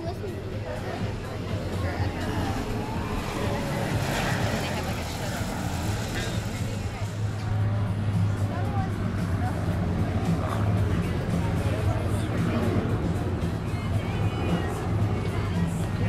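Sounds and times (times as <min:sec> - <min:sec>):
people talking faintly: 0:00.0 - 0:16.0
propeller aircraft engines droning: 0:00.0 - 0:16.0.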